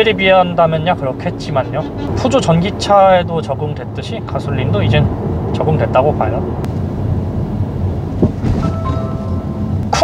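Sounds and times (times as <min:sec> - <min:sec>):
road rumble inside car: 0:00.0 - 0:10.0.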